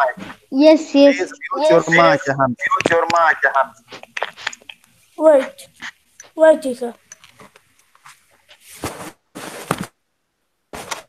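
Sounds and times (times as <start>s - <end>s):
rustling noise on microphone: 7.2s - 10.0s, 10.7s - 11.0s.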